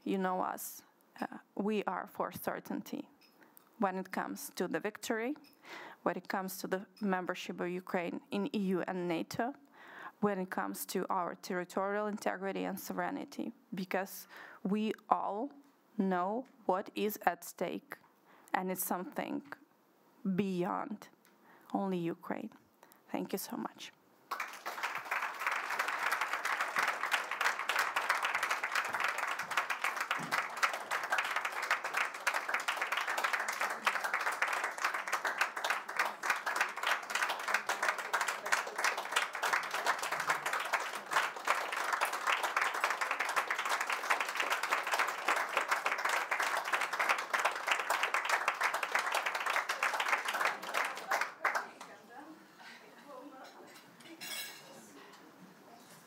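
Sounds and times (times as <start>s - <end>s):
crowd applauding: 24.3s - 51.8s.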